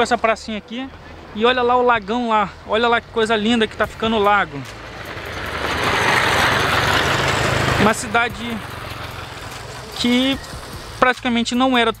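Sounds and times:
vehicle passing close by: 0:00.0 - 0:11.2.

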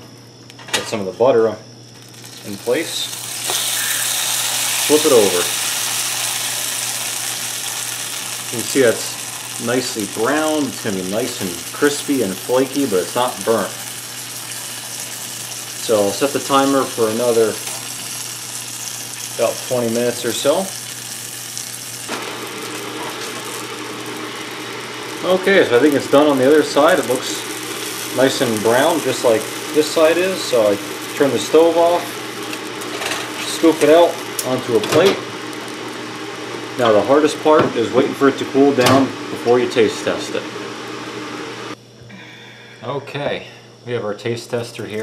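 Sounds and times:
steady hiss: 0:01.0 - 0:41.5
butter sizzling in a skillet: 0:01.9 - 0:39.8
man talking: 0:02.4 - 0:03.2, 0:04.8 - 0:05.5, 0:08.5 - 0:13.8, 0:15.8 - 0:17.6, 0:19.4 - 0:20.8, 0:25.2 - 0:27.5, 0:28.1 - 0:32.1, 0:33.4 - 0:35.3, 0:36.8 - 0:40.5, 0:42.8 - 0:45.0.

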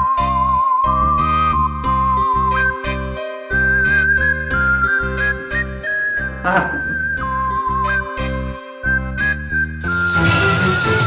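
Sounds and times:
whistle-like melody over bass line: 0:00.0 - 0:08.2, 0:08.9 - 0:11.0.

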